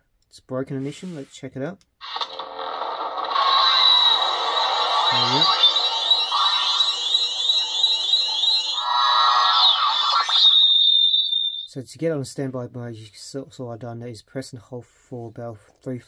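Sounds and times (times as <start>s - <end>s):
repeating electronic sweeps: 3.3s - 11.7s.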